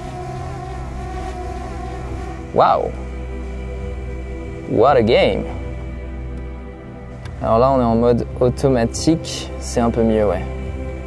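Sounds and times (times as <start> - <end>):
drone propellers humming: 0.0 - 7.4.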